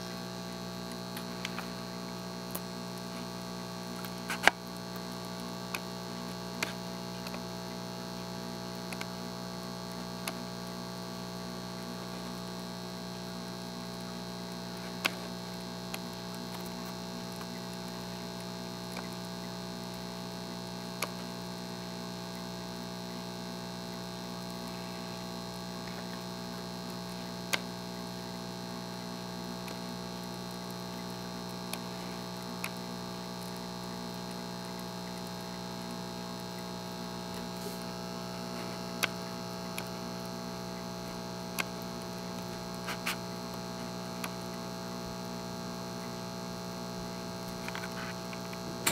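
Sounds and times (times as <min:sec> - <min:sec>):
steady electrical hum: 0:00.0 - 0:48.9.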